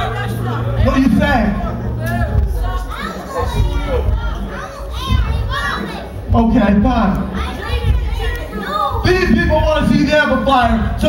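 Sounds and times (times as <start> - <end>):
man's voice: 0.0 - 2.4, 6.3 - 7.4, 9.0 - 11.0
children calling out and shouting: 2.0 - 6.4, 7.2 - 9.1.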